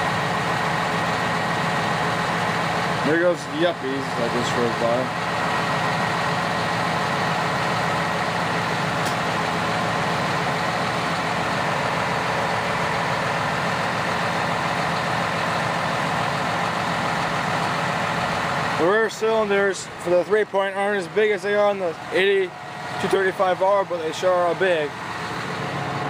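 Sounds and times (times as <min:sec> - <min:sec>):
tractor diesel engine running: 0:00.0 - 0:26.0.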